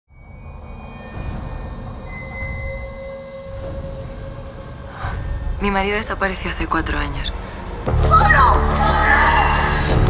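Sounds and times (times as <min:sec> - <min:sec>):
low rumbling drone: 0:00.1 - 0:10.0.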